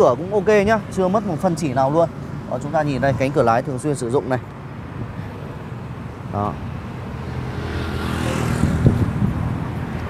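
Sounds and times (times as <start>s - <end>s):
vehicle engine hum passing: 0.8s - 10.0s.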